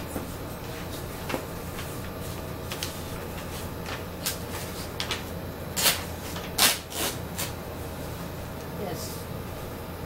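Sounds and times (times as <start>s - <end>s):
paper rustling and flapping: 0.2s - 7.6s.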